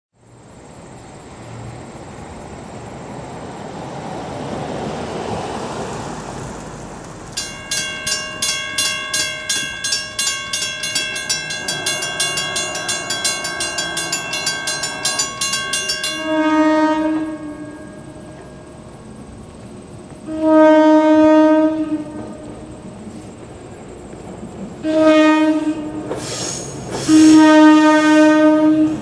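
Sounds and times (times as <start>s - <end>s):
car passing: 0.2s - 28.4s
crossing bells clanging: 7.4s - 20.0s
train horn blast: 16.1s - 18.4s, 20.2s - 22.6s, 24.8s - 26.2s, 27.0s - 29.0s.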